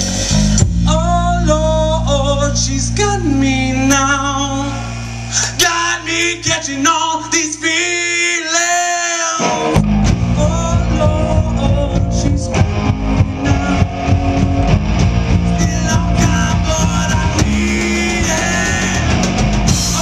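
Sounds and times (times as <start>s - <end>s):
rock band playing loud: 0.0s - 8.0s, 8.6s - 20.0s.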